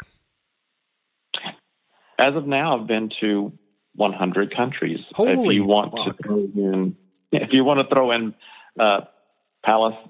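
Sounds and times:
man speaking: 5.2 - 6.8.

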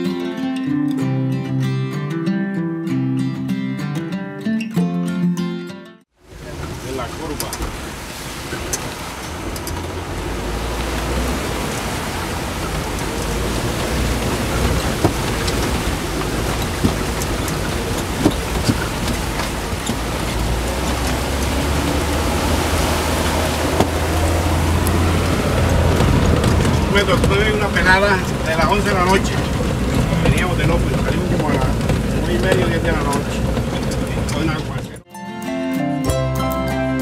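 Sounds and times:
tyre and road noise hiss: 6.2 - 34.8
vehicle engine drone: 6.2 - 35.0
vehicle jolting knocks: 12.5 - 35.0.

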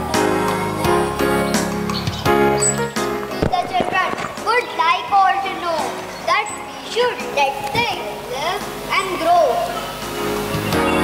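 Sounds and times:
quiet background music: 0.0 - 11.0
children calling out: 3.4 - 11.0.

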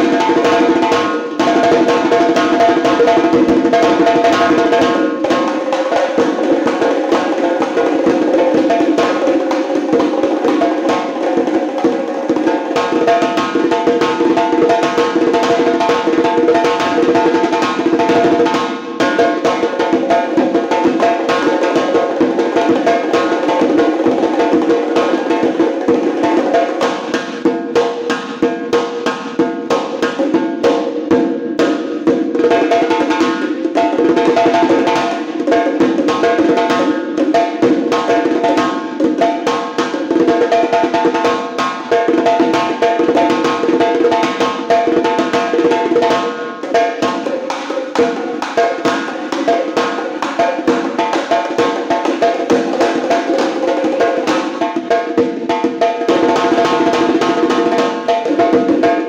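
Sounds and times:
large drum played fast: 0.0 - 59.0.

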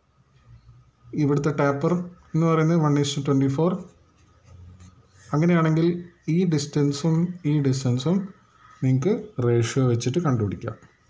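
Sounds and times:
man's voice: 5.3 - 10.8.

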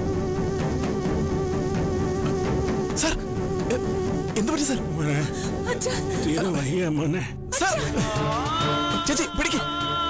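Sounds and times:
buzzing drone music: 0.0 - 10.0.

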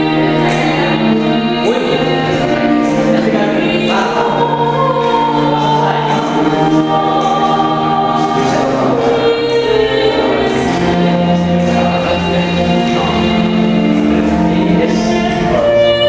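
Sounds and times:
small choir singing: 0.0 - 16.0
string ensemble: 0.0 - 16.0.

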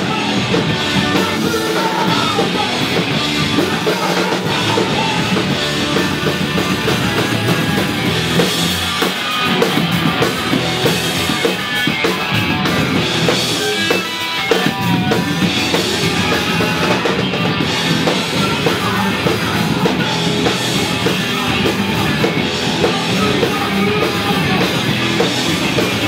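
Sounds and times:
drum kit: 0.0 - 26.0
electric guitar: 0.0 - 26.0.

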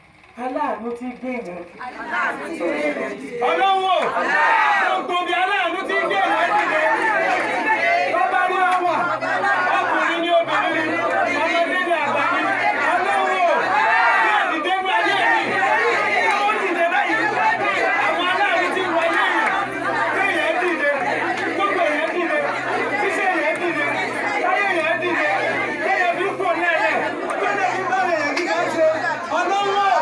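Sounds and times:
voices talking: 0.4 - 30.0.

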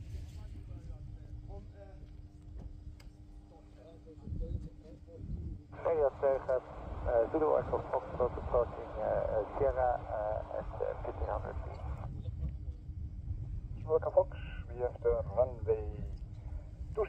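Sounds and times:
radio voice transmission: 5.7 - 12.1, 13.8 - 16.1
low rumble: 5.8 - 12.3.

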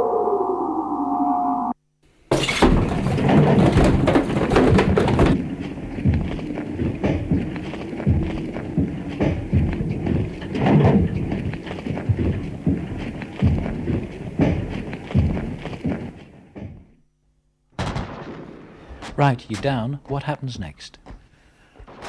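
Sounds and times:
irregular thuds and bangs: 2.3 - 17.0, 17.8 - 20.3, 21.1 - 22.0.

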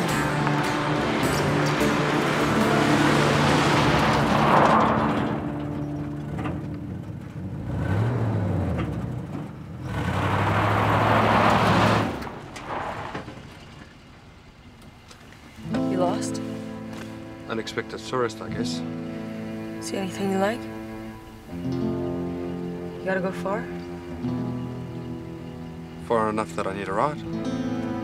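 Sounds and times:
background music: 0.0 - 8.6, 15.6 - 28.0
tyres crunching on gravel: 0.0 - 18.8
truck engine: 0.0 - 28.0.

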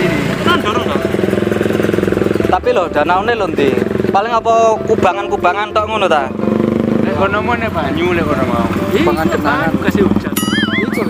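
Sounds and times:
motorcycle engine running: 0.0 - 11.0
voices: 0.0 - 11.0.

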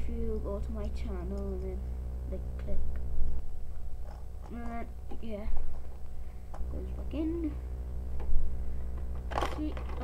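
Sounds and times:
plastic toy bricks clattering: 9.3 - 10.0.

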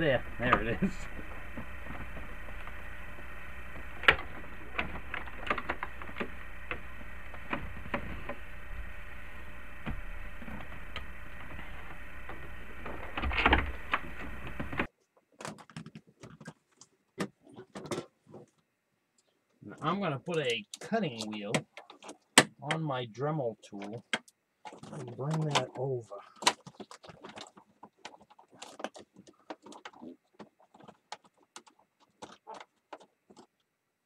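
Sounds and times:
steady background noise: 0.0 - 16.4.

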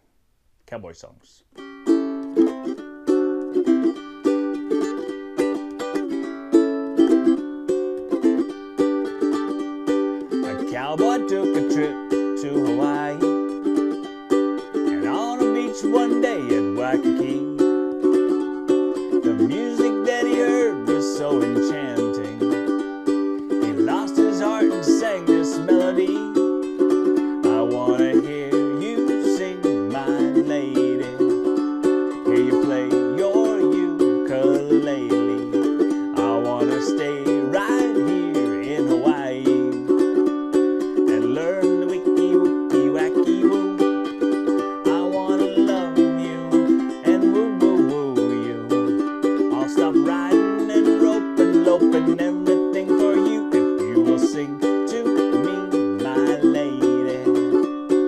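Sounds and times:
ukulele strumming chords: 1.5 - 58.0
man humming melody: 10.3 - 13.5, 14.8 - 18.0, 19.2 - 22.7, 23.6 - 26.4, 27.4 - 31.4, 32.1 - 40.0, 41.1 - 44.1, 44.8 - 48.9, 49.5 - 57.7.

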